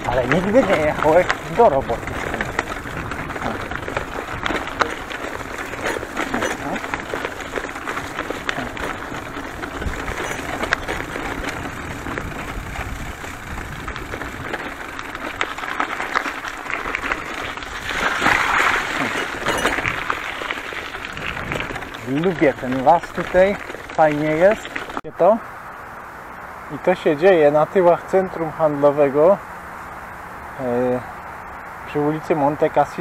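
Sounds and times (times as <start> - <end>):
bicycle clicks and rattles: 0.0 - 25.0
bicycle tyres rolling on dirt: 0.0 - 33.0.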